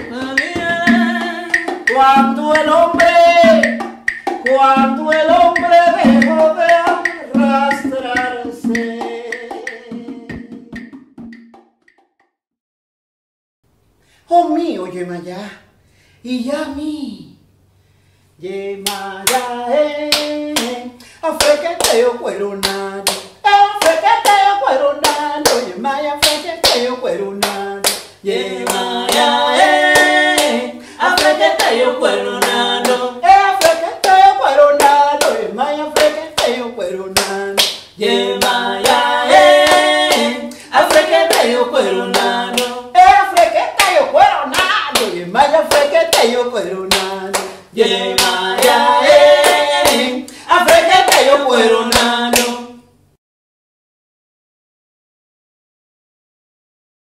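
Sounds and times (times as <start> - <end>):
women singing: 0.0 - 10.9, 18.4 - 52.9
hands clapping to a beat: 0.0 - 12.0, 18.9 - 19.5, 20.1 - 20.8, 21.4 - 36.6, 37.2 - 52.6.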